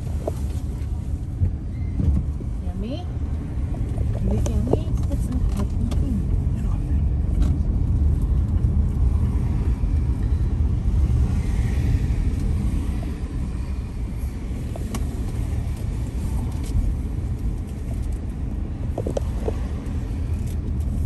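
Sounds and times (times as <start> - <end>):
car engine and tyres rumble: 0.0 - 21.0.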